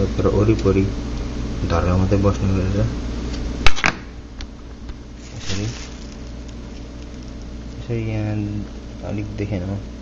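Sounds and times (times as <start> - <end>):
steady low hum: 0.0 - 10.0
person speaking: 5.2 - 6.3.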